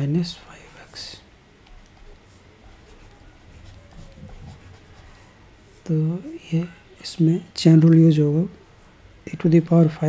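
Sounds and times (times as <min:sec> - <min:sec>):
person speaking: 0:00.0 - 0:10.0
stylus scratching on tablet: 0:01.7 - 0:05.9.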